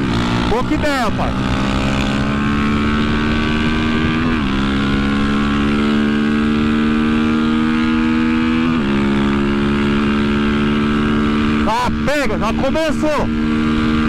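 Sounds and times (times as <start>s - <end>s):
motorcycle engine at full throttle: 0.0s - 14.0s.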